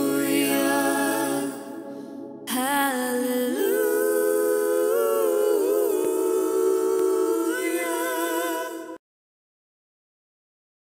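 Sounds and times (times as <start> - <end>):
man and woman singing in harmony: 0.0 - 9.0.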